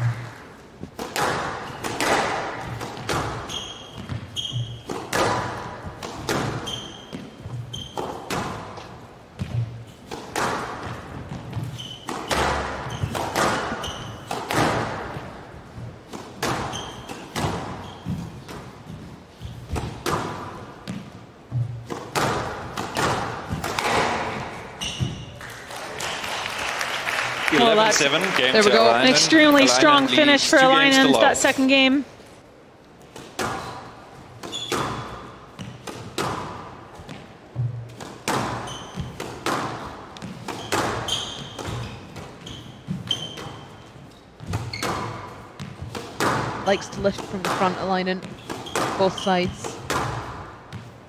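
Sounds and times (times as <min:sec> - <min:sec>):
squash ball struck by rackets: 0:00.0 - 0:15.4, 0:16.1 - 0:18.8, 0:19.6 - 0:25.2, 0:33.1 - 0:43.6, 0:44.4 - 0:50.9
short high shoe squeaks: 0:03.3 - 0:05.0, 0:06.6 - 0:08.2, 0:11.6 - 0:14.4, 0:16.6 - 0:18.3, 0:24.7 - 0:25.4, 0:33.6 - 0:35.8, 0:38.6 - 0:39.2, 0:40.5 - 0:45.3.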